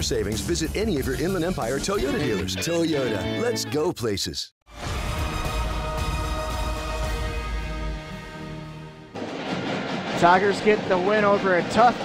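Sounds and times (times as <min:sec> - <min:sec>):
sports broadcast music chord: 0:04.8 - 0:09.1.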